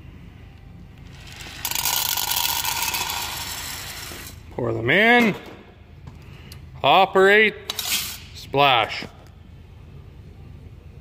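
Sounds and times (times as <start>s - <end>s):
soybeans rattling into metal cylinder: 1.2s - 4.2s.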